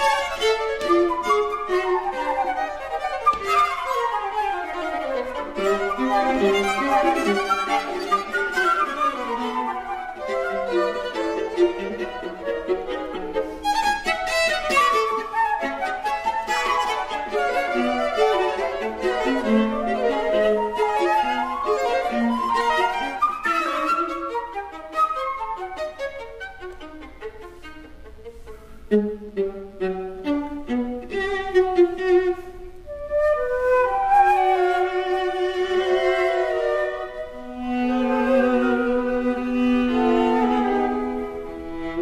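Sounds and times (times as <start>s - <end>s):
flute violin and viola trio: 0.0s - 42.0s.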